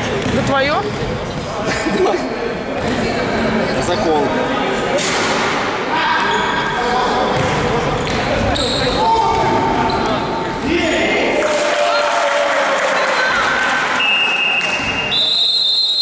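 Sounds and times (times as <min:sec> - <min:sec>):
basketball bouncing: 0:00.0 - 0:01.4
sneakers squeaking on court: 0:07.3 - 0:10.6
referee whistle: 0:14.0 - 0:16.0.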